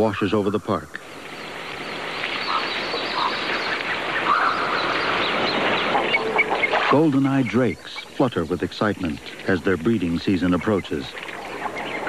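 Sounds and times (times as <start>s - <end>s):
ducks calling: 0.0s - 12.0s
water noise: 0.0s - 12.0s.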